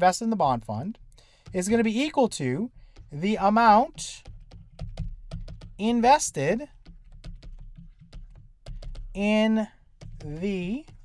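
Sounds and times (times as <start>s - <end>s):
stylus tapping on pen tablet: 0.9s - 11.0s.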